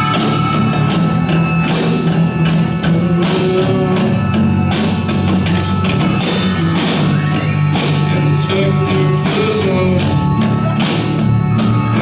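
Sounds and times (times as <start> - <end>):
drum kit: 0.0 - 12.0
electric guitars: 0.0 - 12.0.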